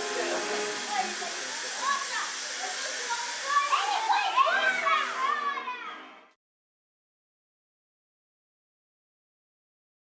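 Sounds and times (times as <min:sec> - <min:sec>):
children shouting: 0:00.9 - 0:06.2.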